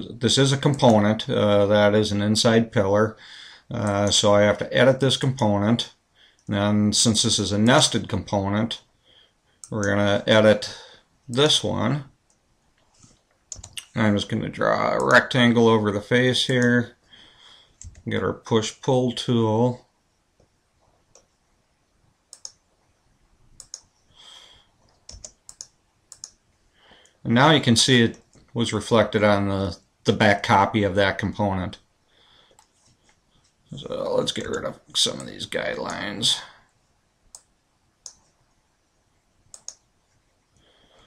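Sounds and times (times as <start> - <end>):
soft hiss: 0.0 - 41.0
computer mouse clicks: 13.3 - 13.9, 21.1 - 21.4, 22.3 - 22.6, 23.6 - 23.9, 24.8 - 26.4, 37.3 - 38.4, 39.5 - 39.9
mouse and keyboard clicks: 13.5 - 13.9.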